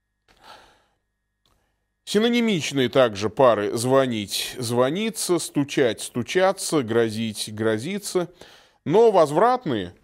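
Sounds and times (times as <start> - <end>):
man breathing in: 0.3 - 1.1, 8.4 - 8.8.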